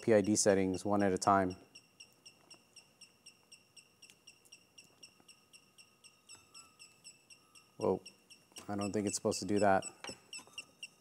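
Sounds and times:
motors chirping faintly: 0:00.0 - 0:11.0
thin steady tone: 0:00.0 - 0:11.0.

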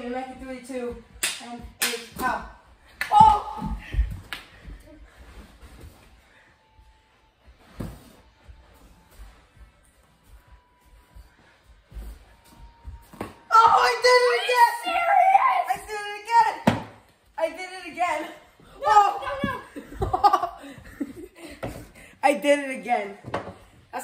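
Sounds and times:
hockey sticks hitting a ball: 0:16.6 - 0:17.0.

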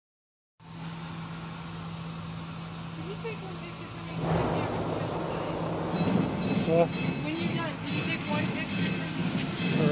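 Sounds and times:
low hum with hiss: 0:00.6 - 0:09.9.

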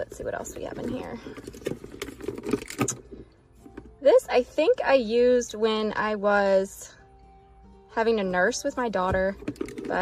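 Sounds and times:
plastic objects clicking and rattling: 0:00.5 - 0:04.0, 0:09.4 - 0:10.0.

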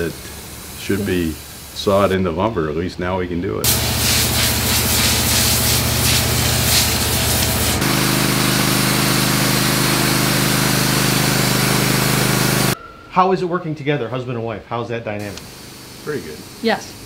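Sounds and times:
bandsaw mill sawing log: 0:03.6 - 0:12.8.

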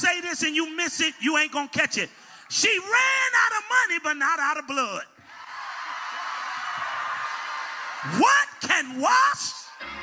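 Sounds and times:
congregation cheering and shouting: 0:05.2 - 0:10.0.

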